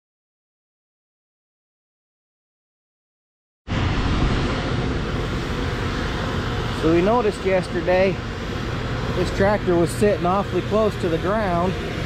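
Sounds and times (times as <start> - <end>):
outdoor rumble and hiss: 3.7 - 12.0.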